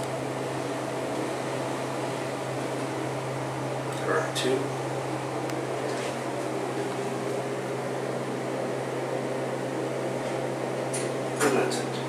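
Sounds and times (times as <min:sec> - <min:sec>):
elevator mechanical hum: 0:00.0 - 0:12.0.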